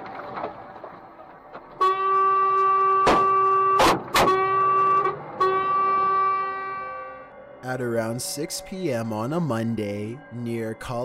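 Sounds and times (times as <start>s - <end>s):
truck horn blast: 1.7s - 7.4s
stones striking truck: 2.6s - 4.4s.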